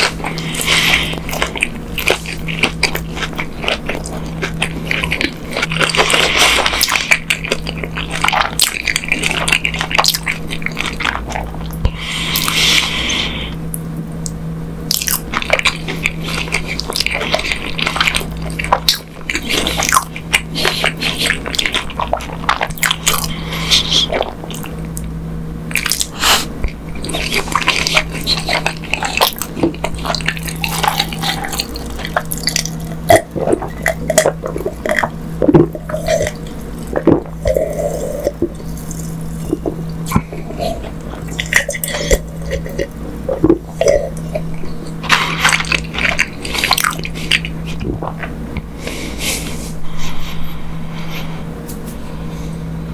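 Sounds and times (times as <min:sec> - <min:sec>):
steady low hum: 0:00.0 - 0:52.9.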